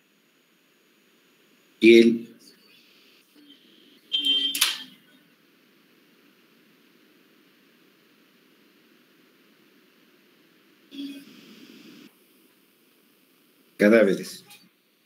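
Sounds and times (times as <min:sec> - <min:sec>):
open microphone hiss: 0:00.0 - 0:15.0.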